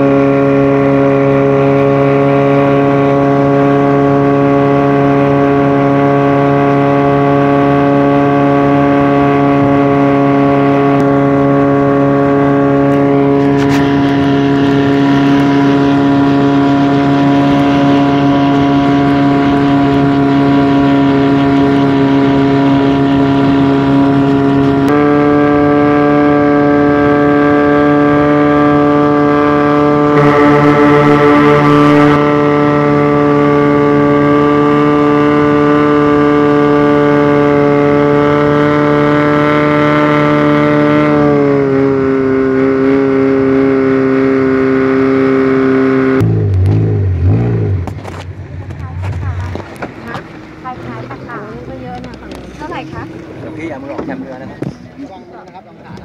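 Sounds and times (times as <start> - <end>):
speedboat engine droning: 0.0 - 56.0.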